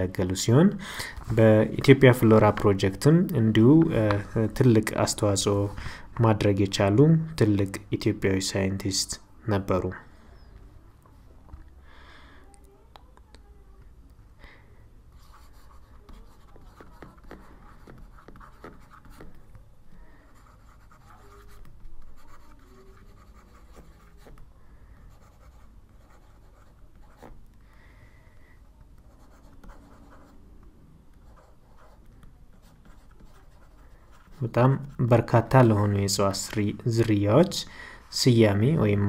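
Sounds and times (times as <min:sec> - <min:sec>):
pen scratching on paper: 0:15.2 - 0:19.4, 0:20.3 - 0:24.4, 0:25.1 - 0:27.4, 0:29.0 - 0:30.4, 0:31.2 - 0:34.9.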